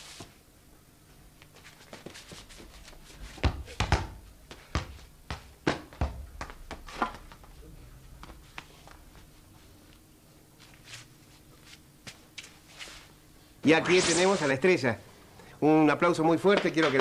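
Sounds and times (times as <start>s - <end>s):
heavy footsteps on stage floor: 3.2s - 9.4s.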